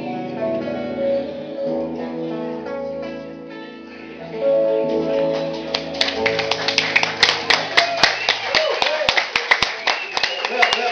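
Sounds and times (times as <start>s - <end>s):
electric guitar chord: 0.0s - 7.6s
audience clapping: 5.3s - 10.9s
man talking: 10.4s - 10.9s.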